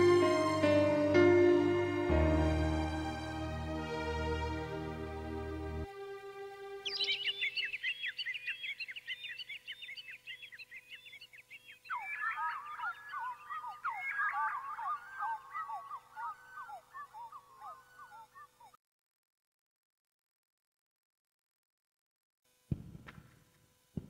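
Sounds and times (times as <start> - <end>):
birds chirping: 6.8 - 18.8.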